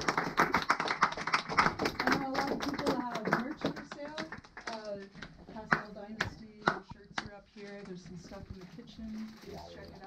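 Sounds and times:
small audience clapping: 0.0 - 7.4.

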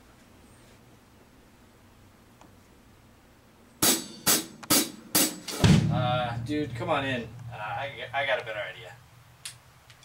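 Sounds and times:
drum kit hits: 3.8 - 8.6.

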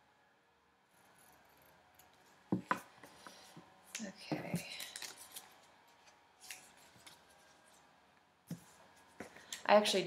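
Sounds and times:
paper rustling: 4.8 - 7.8.

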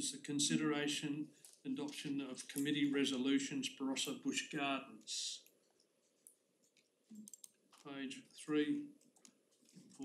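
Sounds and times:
person speaking: 0.0 - 5.5, 7.1 - 9.0
faint clicks: 5.4 - 7.9.

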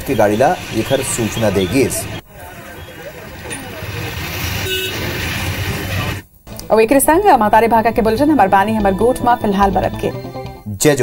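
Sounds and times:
motor vehicle running: 0.0 - 6.2
vehicle horn toot: 4.6 - 5.1.

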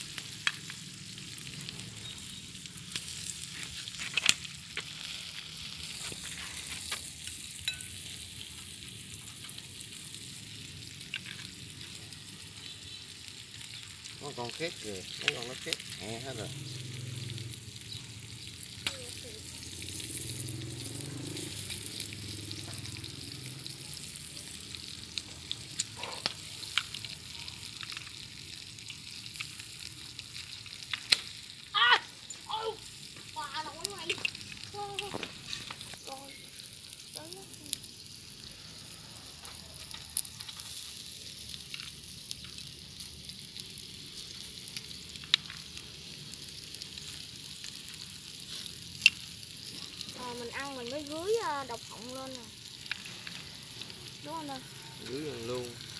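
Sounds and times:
sharp pops and crackles: 0.0 - 38.6, 39.2 - 55.9
shellfish sizzling on a grill: 0.0 - 55.9.

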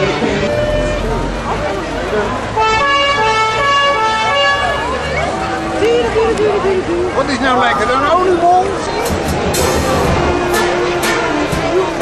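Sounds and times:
fire engine two-tone horn: 0.0 - 1.6, 2.4 - 5.8, 9.6 - 12.0
crowd chatter: 0.0 - 12.0.

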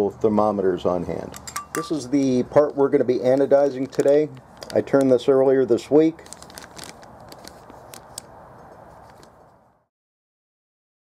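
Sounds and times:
low steady hiss: 0.0 - 9.8
plastic bag crinkling: 1.8 - 9.4.

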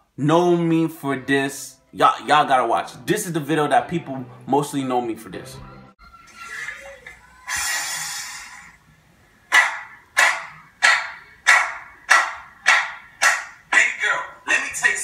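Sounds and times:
hand claps: 9.5 - 13.6.

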